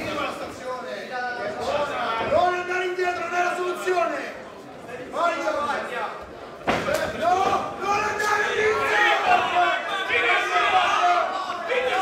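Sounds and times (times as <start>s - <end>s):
people shouting: 7.2s - 12.0s.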